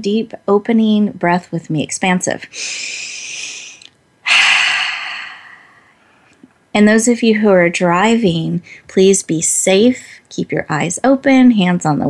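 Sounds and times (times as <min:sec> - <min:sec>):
woman breathing out: 0:02.5 - 0:06.3.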